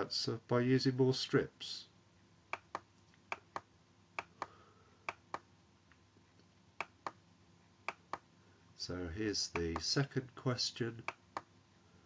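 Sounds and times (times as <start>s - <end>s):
low background hiss: 0.0s - 12.0s
computer mouse clicking: 2.5s - 5.5s.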